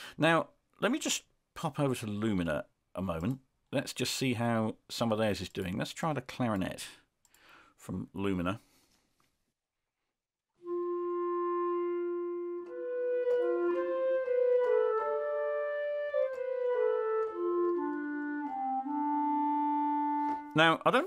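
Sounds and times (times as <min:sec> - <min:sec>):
clarinet melody: 0:10.6 - 0:20.8.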